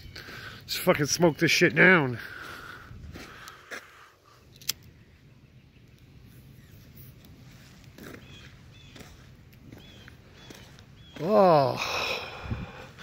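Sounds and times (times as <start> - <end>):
bird calling: 4.9 - 12.4.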